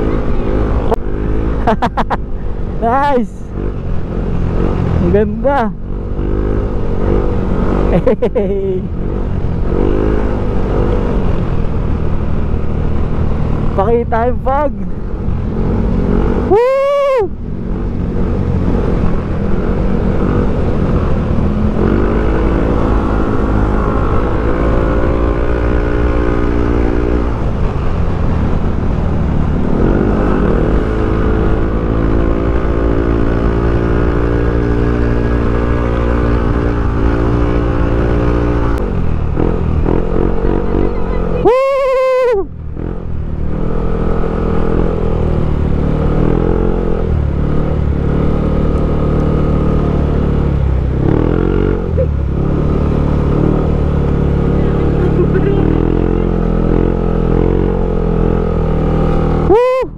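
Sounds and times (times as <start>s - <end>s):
motorcycle engine accelerating: 0.0s - 59.9s.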